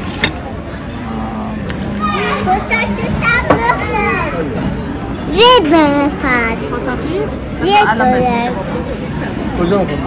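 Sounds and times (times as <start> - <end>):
children chattering and calling out: 0.0 - 9.5.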